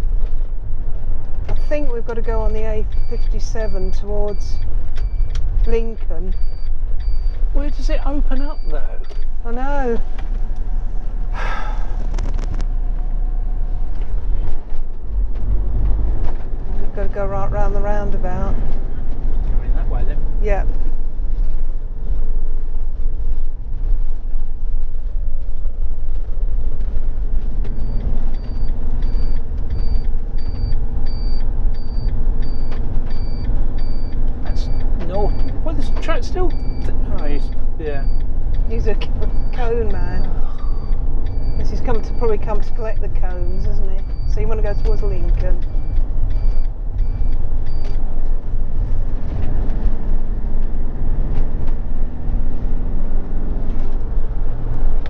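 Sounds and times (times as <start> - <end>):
engine rumble: 0.0 - 55.0
road noise: 0.0 - 55.0.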